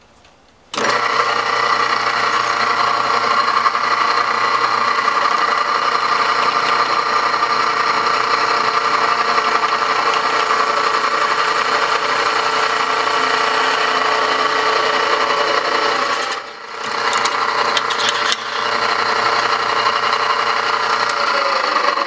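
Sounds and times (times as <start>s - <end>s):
drill press cutting steel: 0.7s - 22.0s.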